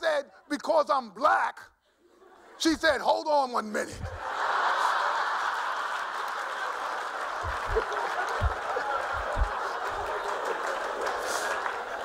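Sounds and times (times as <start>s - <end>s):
audience laughing: 4.1s - 12.0s
audience applauding: 4.2s - 12.0s.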